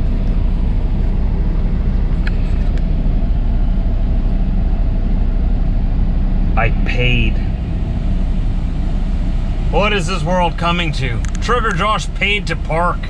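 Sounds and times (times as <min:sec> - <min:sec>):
diesel engine low rumble: 0:00.0 - 0:13.0.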